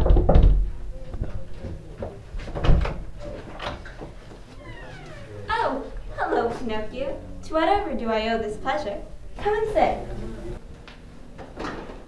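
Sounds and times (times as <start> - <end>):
door hinge squeaking: 4.5 - 5.6.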